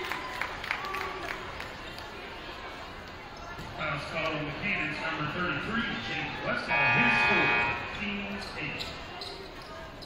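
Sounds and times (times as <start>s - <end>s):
crowd murmur: 5.2s - 10.0s.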